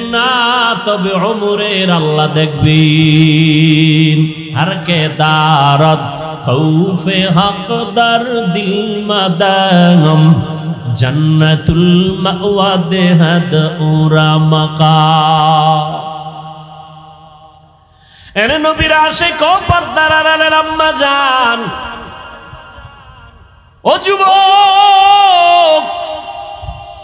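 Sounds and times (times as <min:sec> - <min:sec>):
man chanting: 0:00.0 - 0:17.6, 0:18.2 - 0:27.0.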